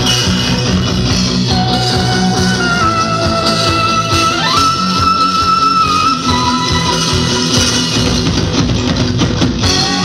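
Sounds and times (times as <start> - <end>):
drums and cymbal hits: 0.0 - 10.0
electric guitar: 0.0 - 10.0.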